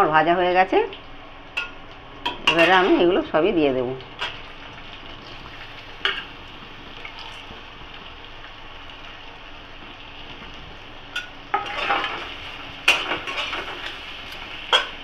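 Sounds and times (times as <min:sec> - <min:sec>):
spices sizzling in hot oil: 0:00.1 - 0:15.0
spatula scraping and clanking pan: 0:11.2 - 0:15.0.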